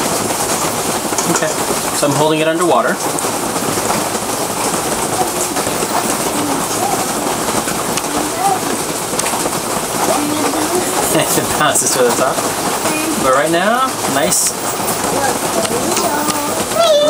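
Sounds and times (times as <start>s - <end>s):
rain hissing: 0.0s - 17.0s.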